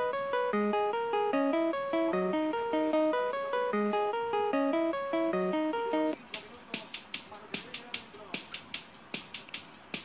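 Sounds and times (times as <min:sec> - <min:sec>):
melodic jingle: 0:00.0 - 0:06.2.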